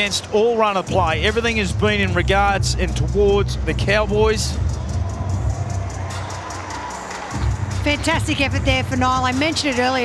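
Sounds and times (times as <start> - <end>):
music over stadium sound system: 0.0 - 10.0
crowd cheering: 3.7 - 10.0.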